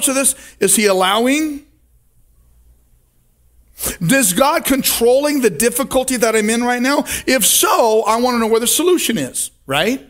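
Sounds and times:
man speaking: 0.0 - 1.8, 3.8 - 10.0
sharp breath: 3.7 - 4.0.

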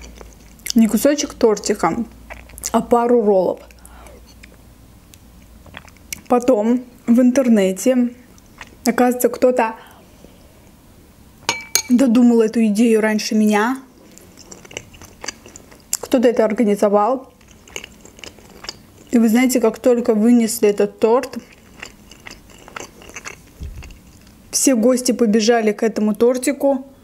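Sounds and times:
chewing with closed lips: 0.0 - 0.8, 2.1 - 2.8, 3.5 - 6.5, 8.3 - 9.0, 14.0 - 16.2, 17.3 - 19.9, 21.2 - 24.4
spoon clinking on ceramic bowl: 11.5 - 12.0
soft low thump: 23.6 - 23.9.

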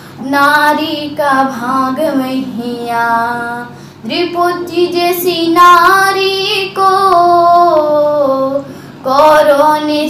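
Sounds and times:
girl singing unaccompanied: 0.2 - 10.0.

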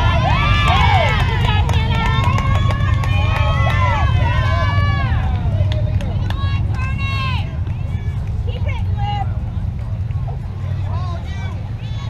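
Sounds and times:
low rumble: 0.0 - 12.0
people shouting and cheering: 0.0 - 12.0.

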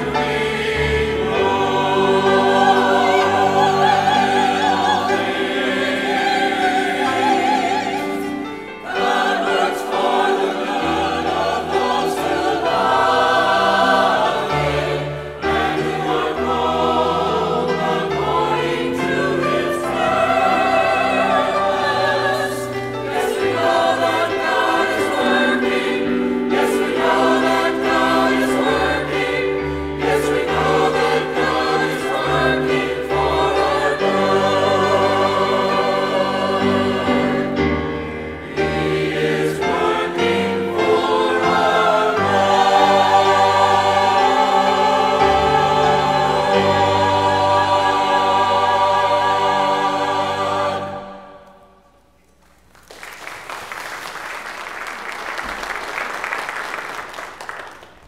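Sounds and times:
sustained instrumental accompaniment: 0.0 - 51.7
mixed choir singing: 0.0 - 51.9.

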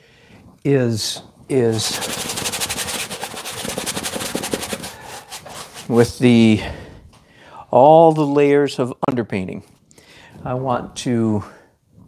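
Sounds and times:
stiff brush scrubbing canvas: 1.5 - 6.3.

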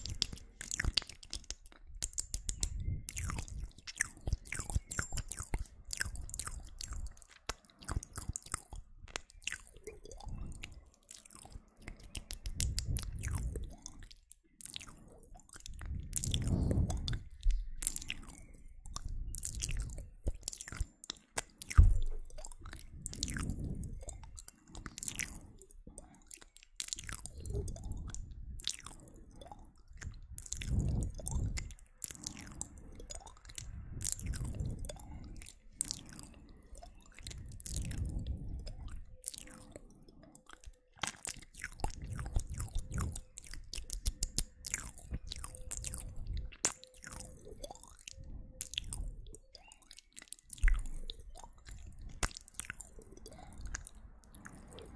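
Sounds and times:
wet mouth clicks and smacks: 0.0 - 54.9.

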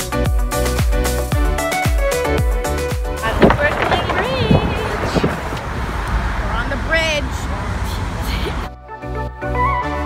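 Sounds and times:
road traffic rumble: 3.0 - 9.4
voices: 3.2 - 8.6.

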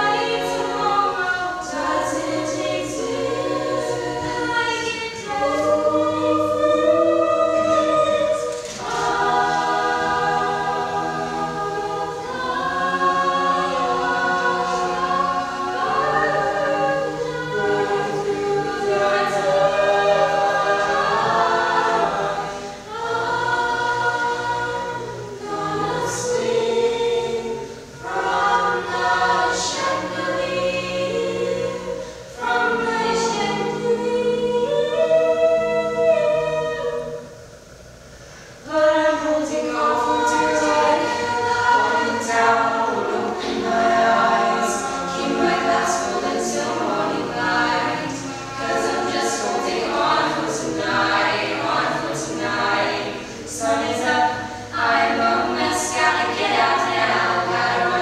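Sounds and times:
children's choir singing in harmony: 0.0 - 58.0.

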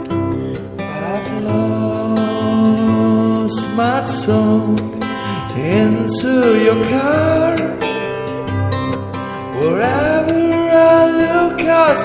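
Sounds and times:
acoustic guitar playing: 0.0 - 12.0.

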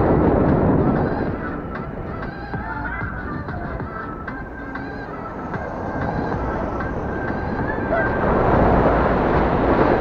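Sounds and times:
scooter wheels rumbling on pavement: 0.0 - 10.0
high wavering tone: 0.8 - 9.2.

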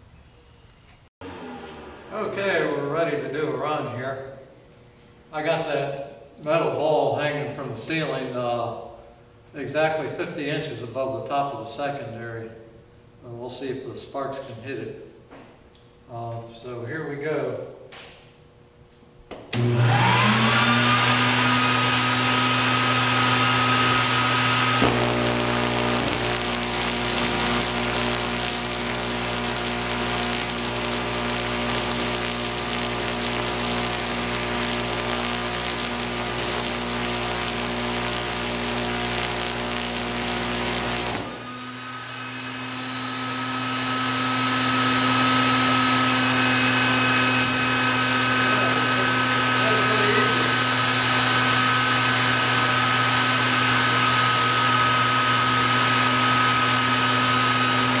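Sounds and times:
steady electrical hum: 24.6 - 42.2
tesla coil sparks crackling: 24.8 - 41.5.

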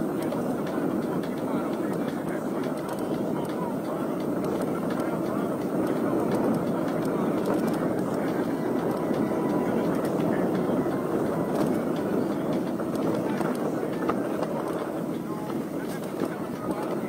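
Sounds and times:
tyres rolling on dirt trail: 0.0 - 17.0
wind buffeting microphone: 0.0 - 17.0.

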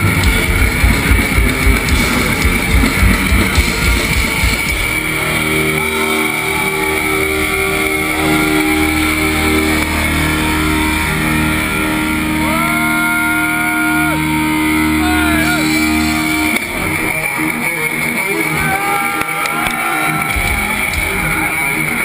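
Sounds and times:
distorted electric guitars and bass: 0.0 - 22.0
crowd shouting: 4.0 - 22.0.

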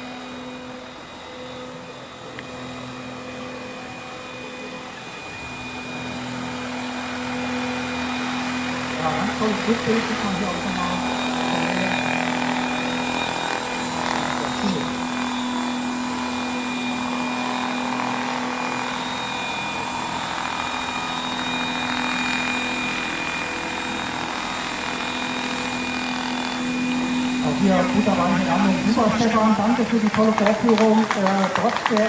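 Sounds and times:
model helicopter rotor whine: 0.0 - 32.0.

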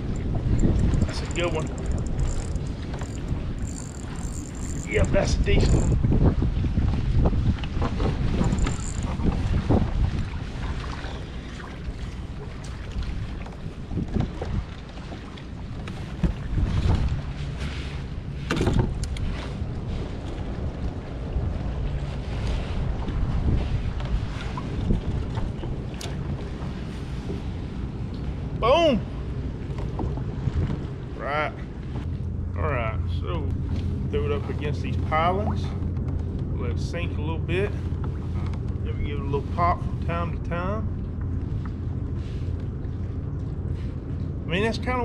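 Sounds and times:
gear knocking and rattling: 0.0 - 6.0, 8.3 - 9.4
water lapping against kayak: 0.0 - 45.0
wind buffeting microphone: 0.0 - 45.0.

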